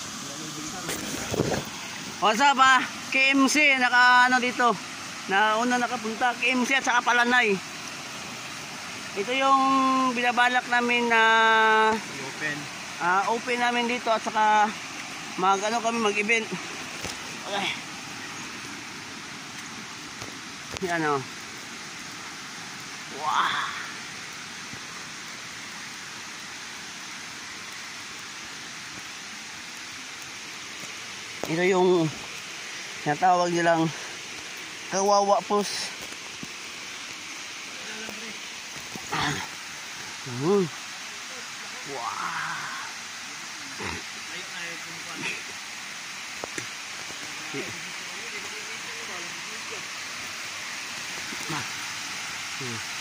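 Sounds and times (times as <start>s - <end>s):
waterfall rushing: 0.0s - 53.0s.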